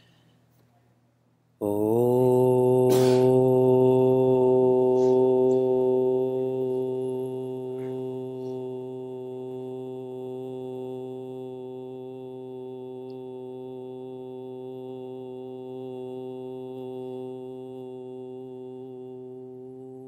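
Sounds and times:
man humming low: 0:01.6 - 0:20.0.

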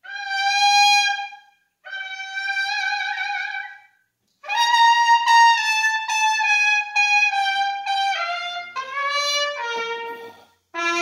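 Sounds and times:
trumpet playing long notes: 0:00.0 - 0:11.0.

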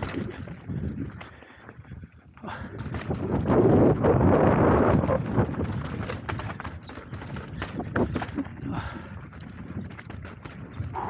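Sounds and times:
bike rattling over bumps: 0:00.0 - 0:11.0
knobby tyres on dirt and stones: 0:00.0 - 0:11.0.

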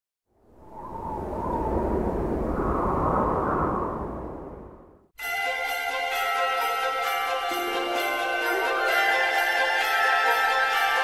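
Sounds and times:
deep rumble: 0:00.5 - 0:05.1
long rushing whoosh: 0:00.5 - 0:05.1.

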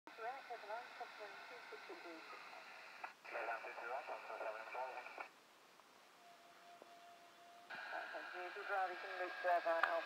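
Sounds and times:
steady hiss: 0:00.1 - 0:10.0.

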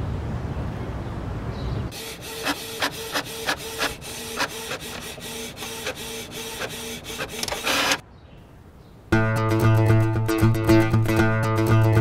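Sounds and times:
inkjet printer whirring and clicking: 0:01.9 - 0:08.0
paper feeding out of printer: 0:01.9 - 0:08.0.

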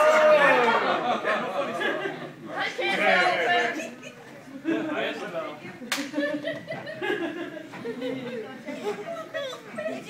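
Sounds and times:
crowd chatter: 0:00.0 - 0:10.0.

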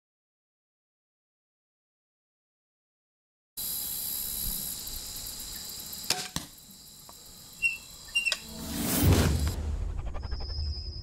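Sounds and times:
whoosh sound effect: 0:08.4 - 0:11.0.

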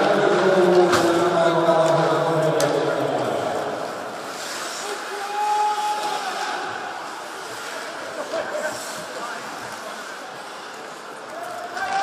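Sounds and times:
crowd murmur: 0:06.0 - 0:12.0.

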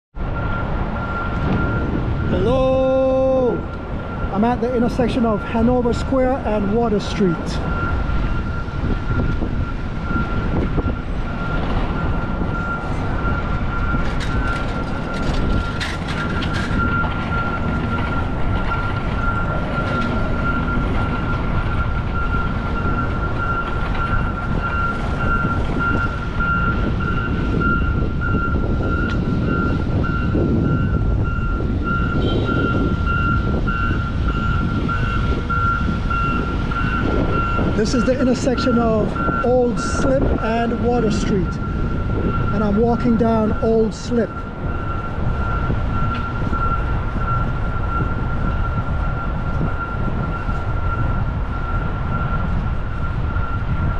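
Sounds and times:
city street traffic: 0:00.1 - 0:53.9.

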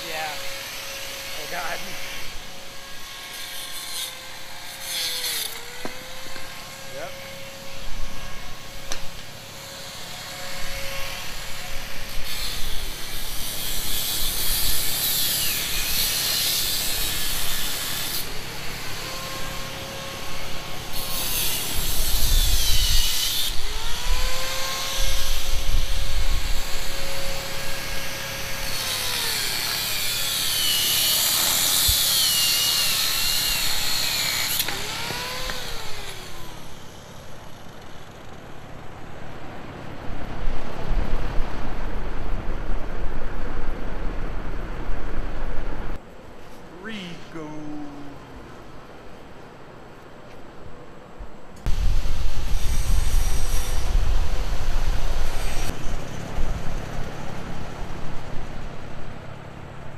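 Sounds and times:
angle grinder cutting metal: 0:00.0 - 0:38.3, 0:51.7 - 0:55.8.

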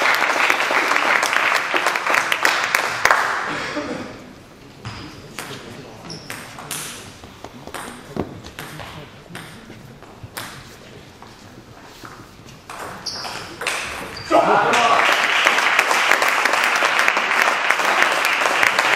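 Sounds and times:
table tennis ball bouncing: 0:07.6 - 0:10.7, 0:12.6 - 0:14.2.

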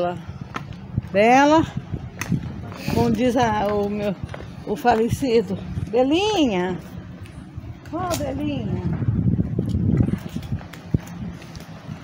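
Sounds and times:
footsteps on stone stairs: 0:00.0 - 0:12.0.

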